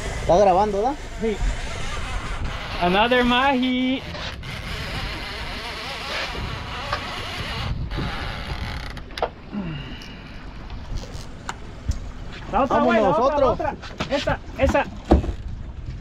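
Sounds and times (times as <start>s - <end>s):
wind on microphone: 0.0s - 9.0s
boat engine rumble: 0.0s - 16.0s.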